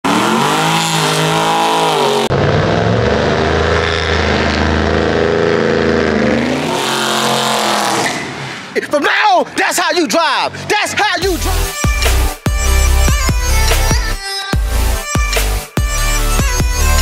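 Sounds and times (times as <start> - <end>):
car engine revving: 0.0 - 8.8.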